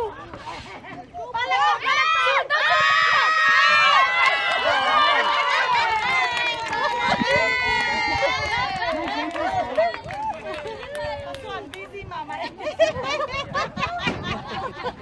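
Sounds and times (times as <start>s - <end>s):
players shouting and cheering: 1.2s - 12.0s.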